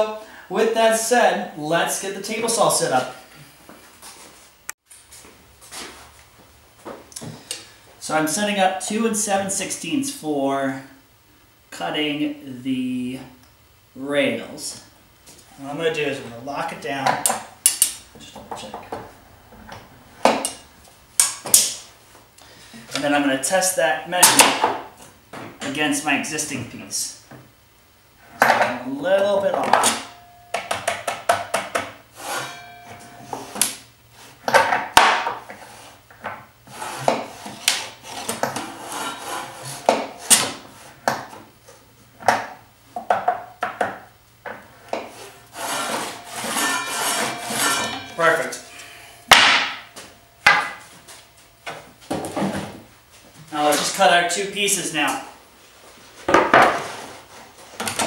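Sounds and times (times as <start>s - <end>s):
wooden boards scraping on metal: 31.7s - 36.0s, 36.7s - 41.3s, 44.9s - 51.0s.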